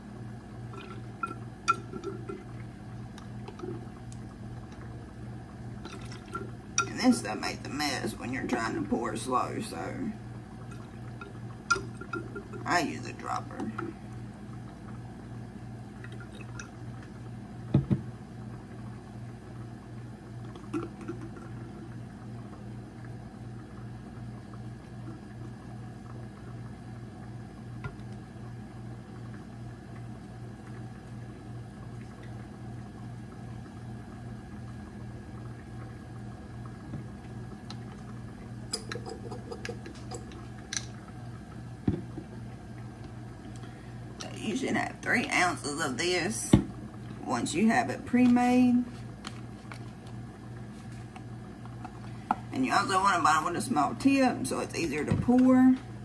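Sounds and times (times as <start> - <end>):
low room hum: 0.0 - 56.0.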